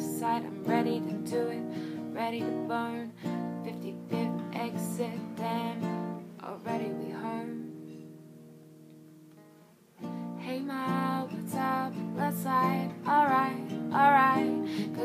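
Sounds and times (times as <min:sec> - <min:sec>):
woman singing: 0:00.0 - 0:08.0, 0:10.4 - 0:15.0
acoustic guitar strumming: 0:00.0 - 0:15.0.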